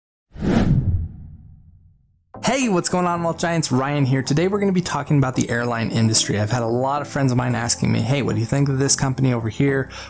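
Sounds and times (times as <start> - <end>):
whoosh sound effect: 0.4 - 1.8.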